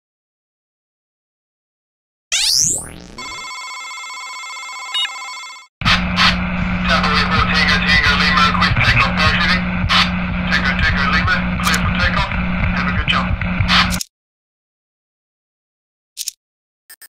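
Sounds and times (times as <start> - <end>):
multi-tone electronic beep: 2.3 - 3.8, 4.8 - 5.4
steady low hum: 5.8 - 13.9
crackling radio noise: 5.8 - 14.0
click: 11.6 - 11.8.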